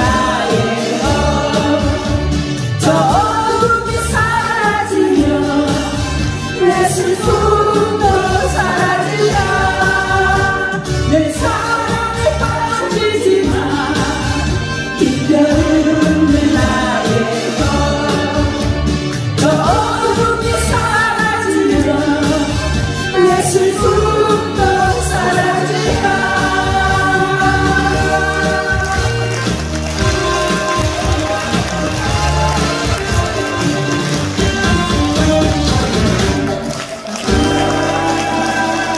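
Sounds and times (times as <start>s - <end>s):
amplified accompaniment with beat: 0.0s - 38.9s
instrumental backing track over speakers: 0.0s - 38.9s
woman singing into a microphone: 2.8s - 18.6s, 19.4s - 29.4s.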